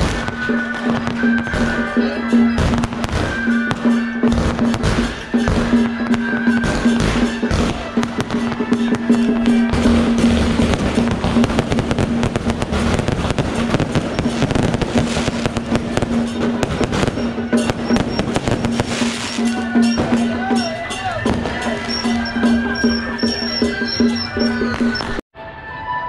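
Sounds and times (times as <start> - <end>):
fireworks crackling and popping: 0.0 - 25.2
music: 0.0 - 26.0
held note: 0.4 - 25.1.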